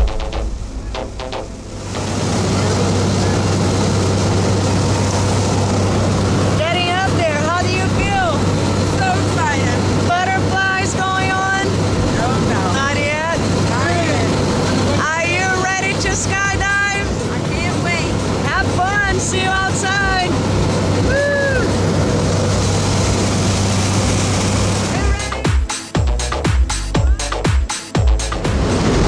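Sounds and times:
airplane cabin engine drone: 0:00.0 - 0:25.4, 0:28.4 - 0:29.0
people's voices: 0:24.9 - 0:25.5.

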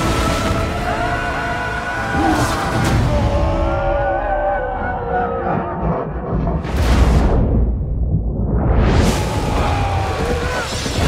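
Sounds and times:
low rumble of battle effects: 0:02.3 - 0:11.0.

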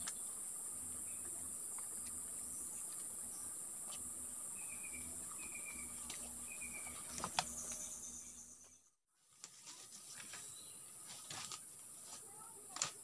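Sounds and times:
insect drone: 0:00.0 - 0:08.8.

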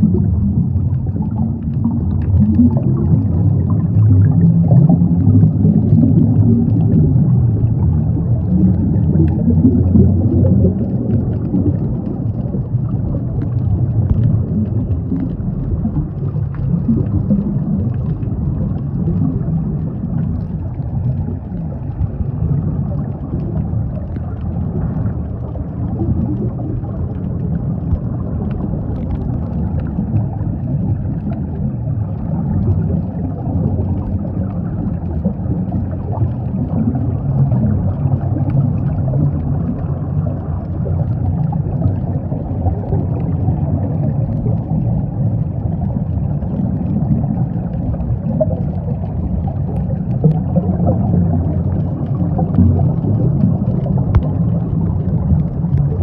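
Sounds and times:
faint ticks and crackles: 0:00.0 - 0:56.0
underwater rumble of moving water: 0:00.0 - 0:56.0.

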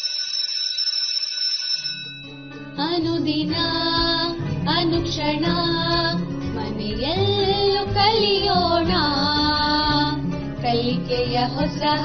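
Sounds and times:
high electronic ringing tones: 0:00.0 - 0:03.0.

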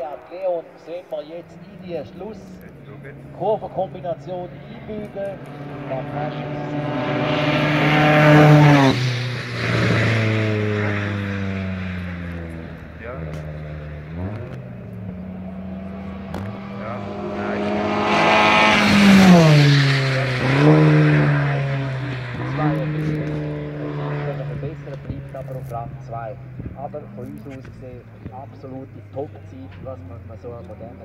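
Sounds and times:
race car engine revving: 0:00.0 - 0:31.0.

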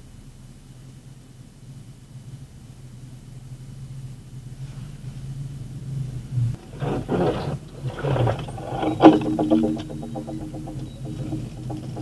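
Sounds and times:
truck engine idling and revving: 0:00.0 - 0:12.0.

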